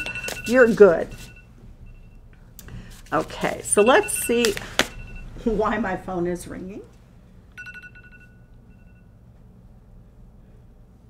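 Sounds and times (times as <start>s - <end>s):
phone ringtone: 0.0s - 2.2s, 3.7s - 5.4s, 7.6s - 9.2s.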